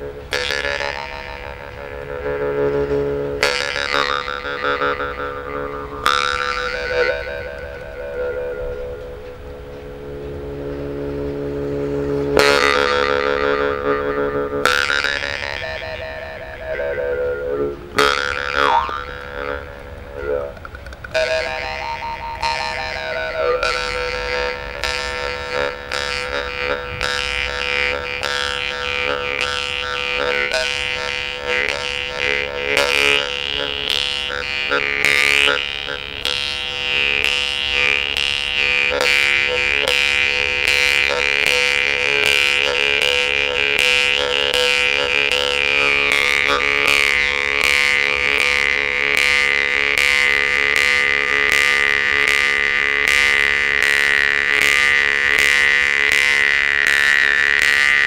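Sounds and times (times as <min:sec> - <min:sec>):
jaw harp buzzing drone: 0:00.0 - 0:58.0.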